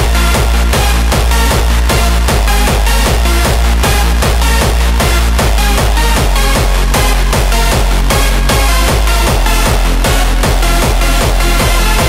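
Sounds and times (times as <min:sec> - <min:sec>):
hardstyle dance music: 0:00.0 - 0:12.0.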